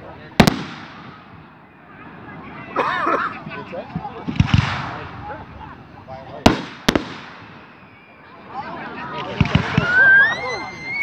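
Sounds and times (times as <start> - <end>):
firework bangs echoing: 0.4 - 1.6, 4.2 - 5.4, 6.4 - 7.8.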